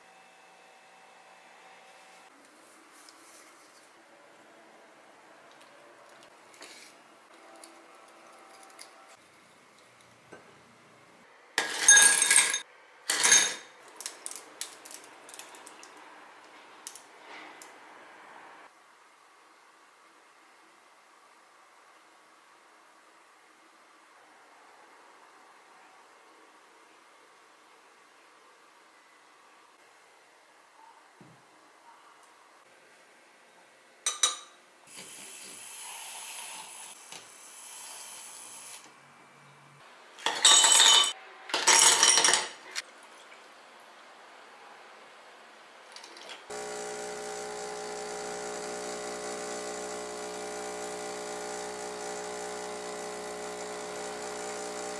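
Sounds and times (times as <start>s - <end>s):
ice cubes clinking in glass: 11.6s - 15.0s, 40.2s - 42.6s
ice cubes clattering into glass: 40.2s - 42.6s
milk frother whirring: 46.5s - 54.9s.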